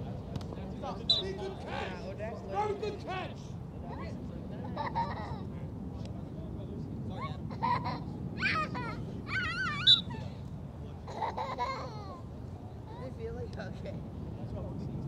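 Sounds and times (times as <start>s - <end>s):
distant voices calling and talking: 0.0s - 13.2s
high wavering shout: 9.3s - 10.3s.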